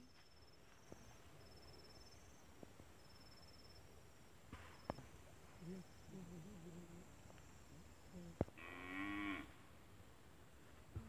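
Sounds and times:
cow mooing: 8.6 - 9.5.

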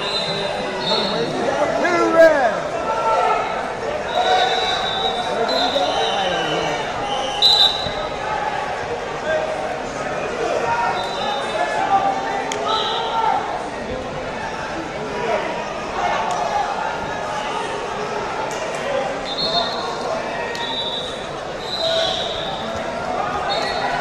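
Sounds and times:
referee whistle blasts: 0.0 - 1.3, 4.1 - 8.2, 10.9 - 11.6, 12.6 - 13.2, 19.2 - 22.8, 23.4 - 24.0
crowd shouting and talking: 0.0 - 24.0.

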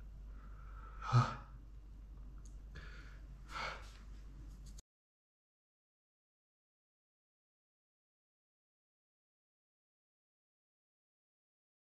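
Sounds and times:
breathy sighs: 0.4 - 1.5, 2.8 - 3.9
man's voiced breath: 2.8 - 4.0.

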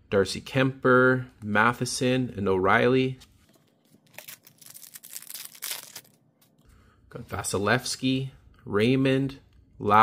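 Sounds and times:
foil wrapper tearing and crinkling: 4.0 - 6.2.

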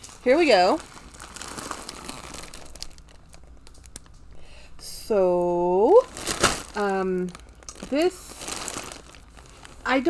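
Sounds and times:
plastic bag crinkling: 0.0 - 4.5, 5.4 - 10.0.

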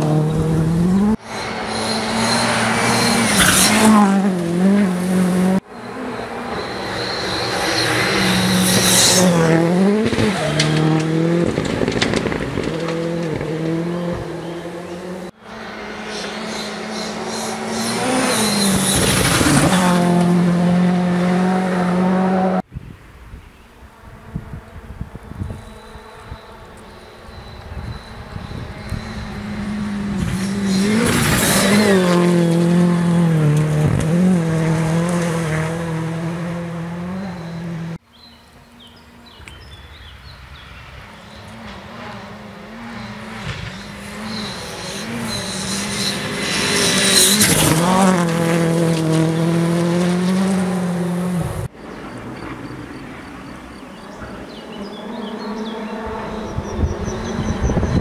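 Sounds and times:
rally car engine revving: 0.0 - 22.7, 25.6 - 38.0, 41.1 - 51.8, 53.4 - 58.0.

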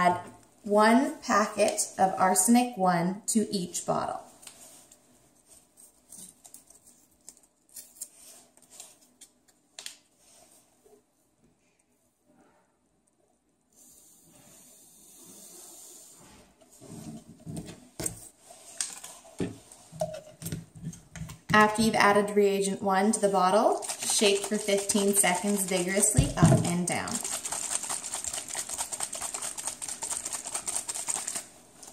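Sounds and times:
paper packets rustling: 23.7 - 26.1, 26.9 - 31.9
plastic bottles and caps knocking: 23.9 - 27.8.

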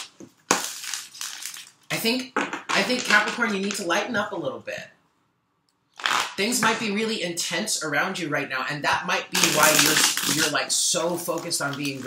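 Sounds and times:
cards riffle shuffling: 9.4 - 10.5.

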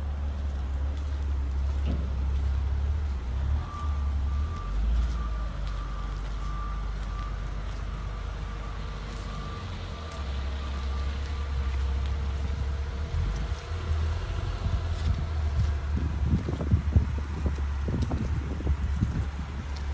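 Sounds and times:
vehicle reversing beeper: 0.4 - 19.9
wind rumble on microphone: 12.4 - 19.9.

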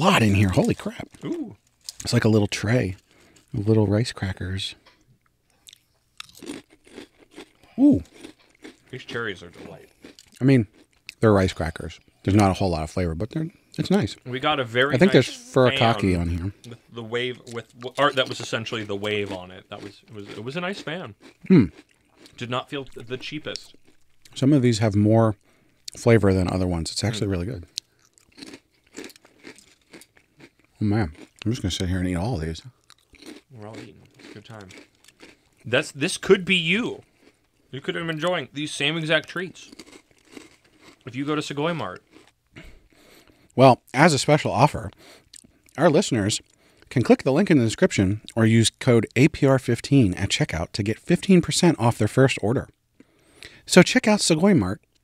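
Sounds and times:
rice crackers crunching: 0.3 - 2.3, 5.6 - 11.2, 17.5 - 24.4, 27.7 - 31.8, 32.8 - 35.8, 39.6 - 41.3.

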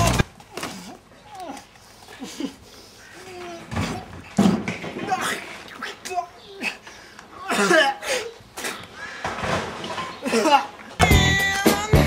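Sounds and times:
background music: 11.0 - 12.0.

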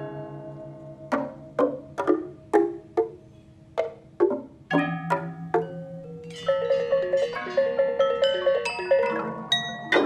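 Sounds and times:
gamelan metallophones ringing: 4.7 - 10.0.

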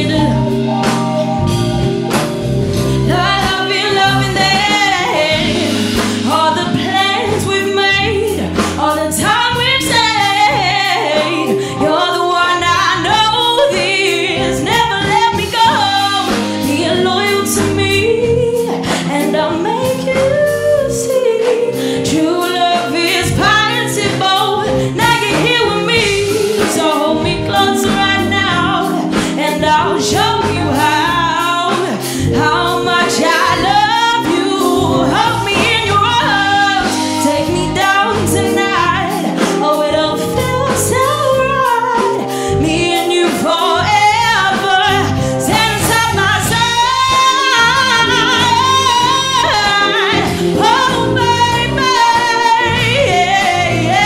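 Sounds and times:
woman singing into microphone: 0.0 - 1.8, 2.8 - 54.0
band playing: 0.0 - 54.0.

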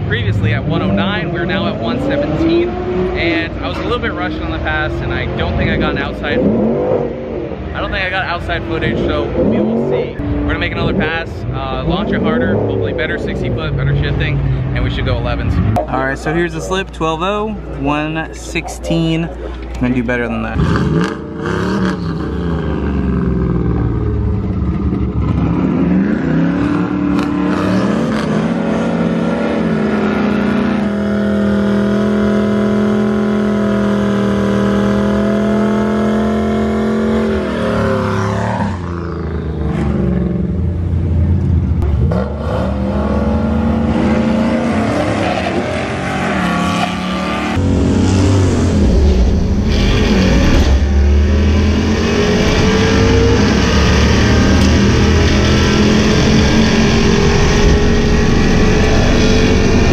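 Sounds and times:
car engine revving: 0.0 - 59.9.

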